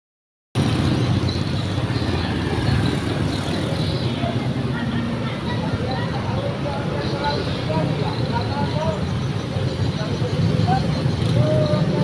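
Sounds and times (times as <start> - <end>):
scooters and cars passing: 0.6 - 12.0.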